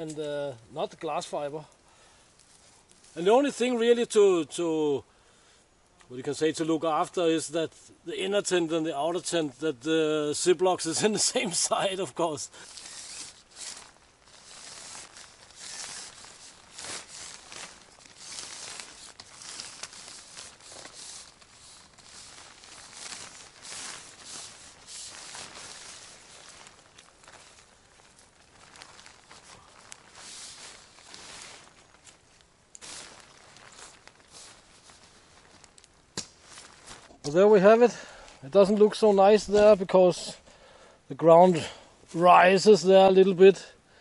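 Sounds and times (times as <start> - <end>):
tent fabric rustling: 11.0 - 40.4
footsteps on forest floor: 12.5 - 40.4.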